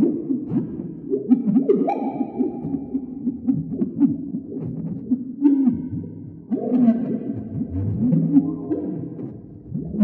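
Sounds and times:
wobbling synthesizer drone: 0:07.4 - 0:10.0.

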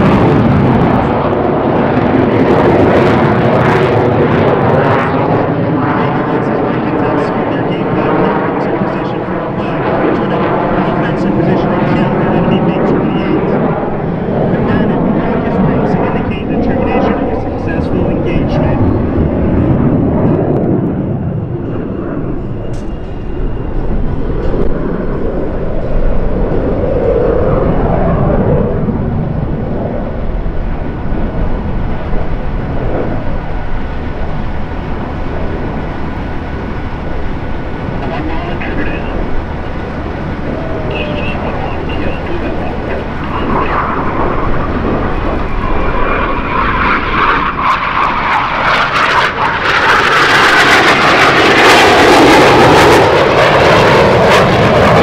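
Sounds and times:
jets flying overhead: 0:00.0 - 0:55.0
voices: 0:06.1 - 0:13.8, 0:14.4 - 0:19.1, 0:34.4 - 0:46.6.

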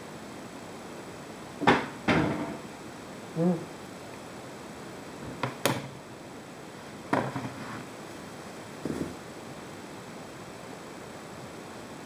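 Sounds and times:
cupboard door shutting: 0:01.6 - 0:02.6.

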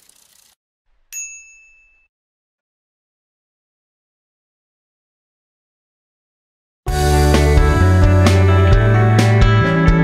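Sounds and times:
bright bell ding: 0:01.1 - 0:02.1.

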